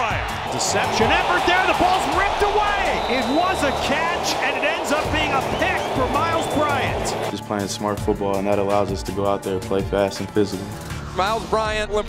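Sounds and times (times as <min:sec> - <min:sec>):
broadcaster play-by-play voice: 0:00.0 - 0:07.4
background music with low beat: 0:00.0 - 0:12.0.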